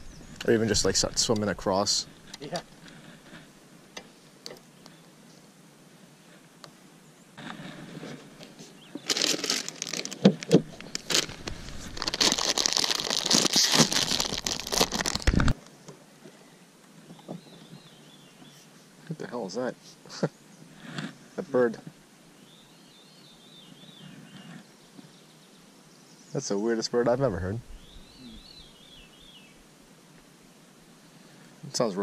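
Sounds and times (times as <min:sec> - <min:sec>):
chip bag crinkling: 0:09.0 - 0:15.6.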